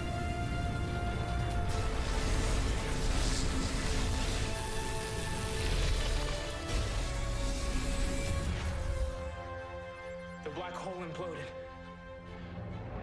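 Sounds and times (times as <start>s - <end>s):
film score with held tones: 0.0s - 13.0s.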